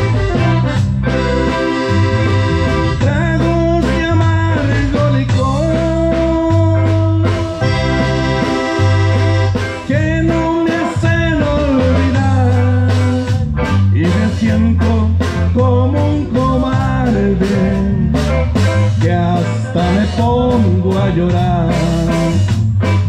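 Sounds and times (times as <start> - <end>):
accordion and guitar melody: 0.0 - 23.0
bass line: 0.0 - 23.0
drums: 0.0 - 23.0.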